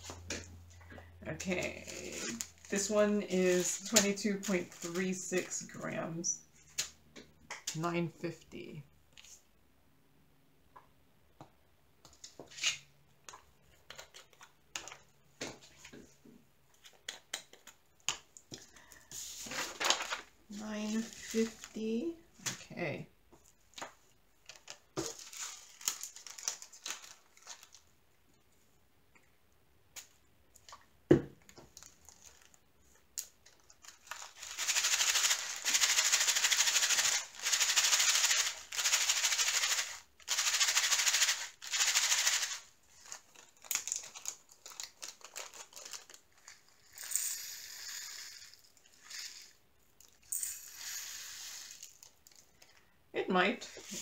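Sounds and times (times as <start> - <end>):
beads rattling in plastic bag: 1.6 - 5.6, 19.6 - 22.0, 24.5 - 27.8, 33.4 - 52.7.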